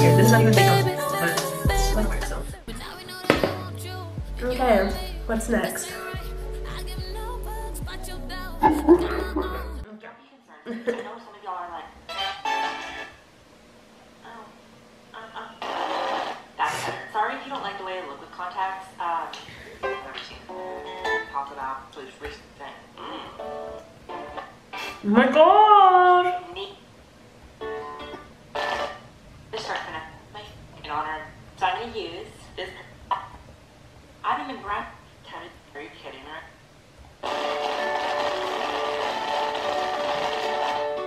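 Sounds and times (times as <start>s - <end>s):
background music: 0.0s - 9.9s, 37.2s - 41.0s
loud drawn-out vocal sound: 7.9s - 9.9s
person speaking: 8.6s - 9.9s.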